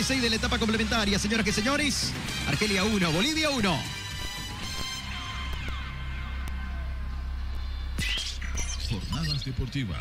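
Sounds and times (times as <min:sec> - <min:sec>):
radio station jingle: 0:00.0 - 0:06.0, 0:08.0 - 0:10.0
low electronic drone: 0:00.0 - 0:09.6.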